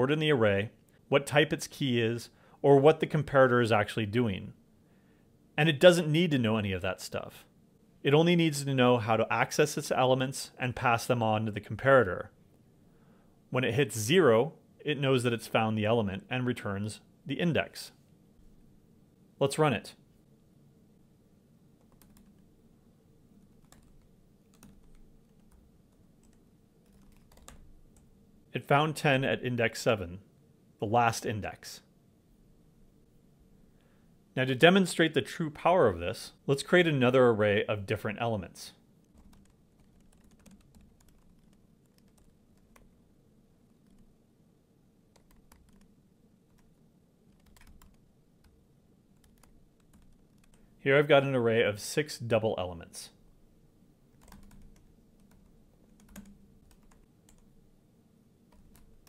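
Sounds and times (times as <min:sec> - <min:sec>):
keystrokes on computer keyboard: 0:21.8 - 0:22.5, 0:23.4 - 0:28.1, 0:39.0 - 0:42.9, 0:43.7 - 0:44.1, 0:45.2 - 0:45.9, 0:46.5 - 0:48.6, 0:49.2 - 0:50.6, 0:54.2 - 0:57.5, 0:58.5 - 0:59.0.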